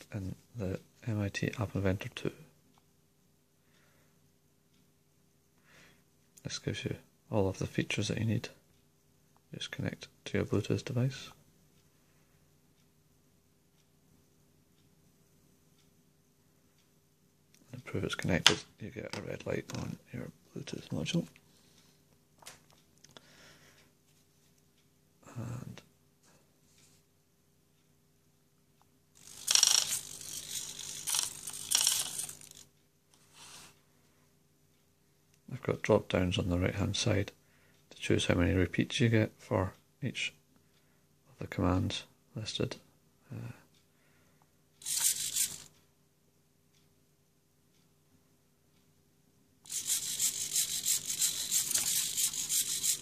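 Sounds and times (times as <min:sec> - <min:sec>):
servos whirring and buzzing: 0:29.2 - 0:32.6, 0:44.8 - 0:45.7, 0:49.7 - 0:53.0
servos whirring with high whine: 0:49.7 - 0:53.0.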